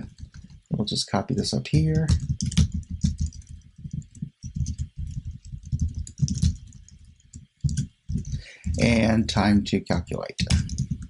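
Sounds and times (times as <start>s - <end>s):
typing on computer keyboard: 0.0s - 9.0s, 10.4s - 11.0s.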